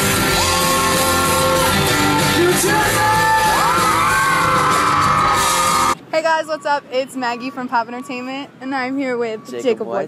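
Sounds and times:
crowd screaming and cheering: 0.0 - 6.0
live pop band playing: 0.0 - 6.0.

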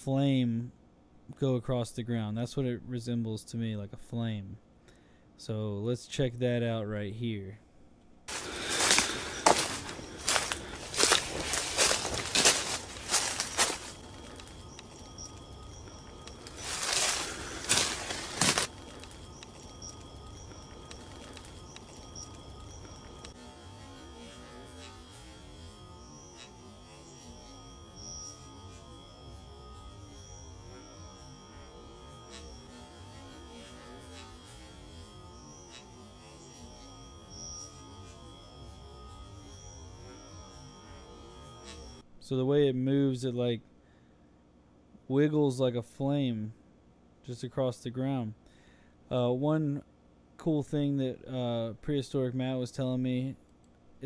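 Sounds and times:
footsteps through dry leaves: 8.3 - 15.4, 16.4 - 19.2
faint high-pitched drone: 8.3 - 43.4.

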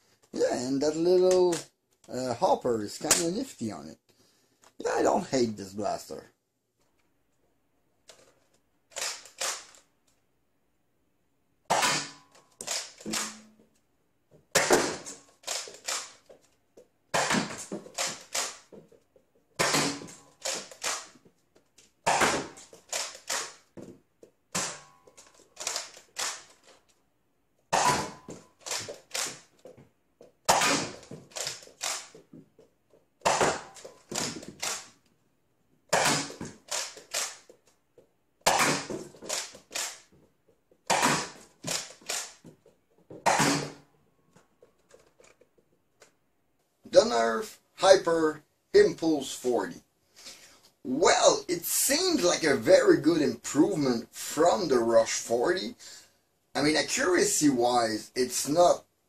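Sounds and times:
toy blaster plastic clicks and snaps: 39.3 - 40.1.

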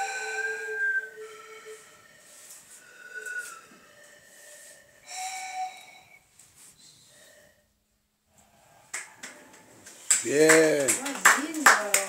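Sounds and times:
hand claps: 8.9 - 12.0.

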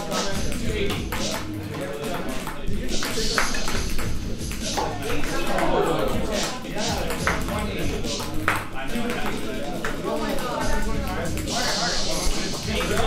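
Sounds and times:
background music: 0.0 - 13.0
chatter: 0.0 - 13.0
ping-pong balls bouncing: 0.0 - 13.0.

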